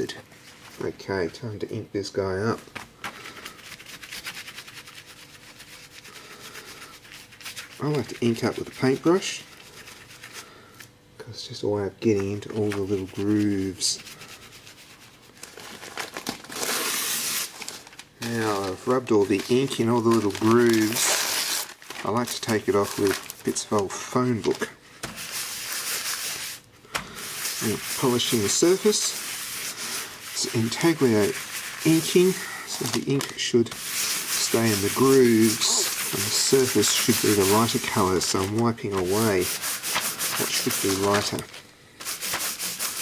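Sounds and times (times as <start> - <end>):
paper rubbing on metal plate: 3.1 - 10.6, 12.1 - 43.0
paintbrush scrubbing scratchy strokes: 3.4 - 10.5, 12.5 - 15.3, 25.2 - 26.6, 27.2 - 41.4, 42.0 - 43.0.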